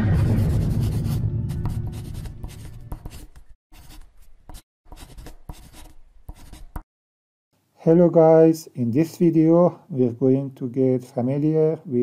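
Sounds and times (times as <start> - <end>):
music sting: 0.0 - 2.5
marker pen scratching: 0.9 - 6.9.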